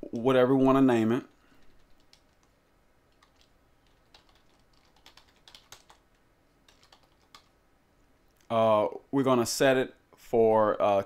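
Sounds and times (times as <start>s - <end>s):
typing on computer keyboard: 1.6s - 6.1s, 6.7s - 7.5s.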